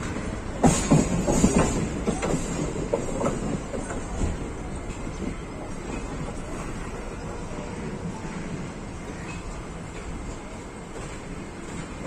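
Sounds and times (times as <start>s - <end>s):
train coaches rumbling: 0.0s - 12.0s.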